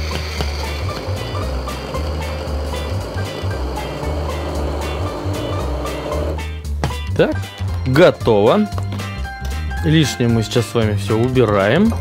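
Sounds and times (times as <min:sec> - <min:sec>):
immersion blender running in pot: 0:00.0 - 0:06.5
background music with steady beat: 0:00.0 - 0:12.0.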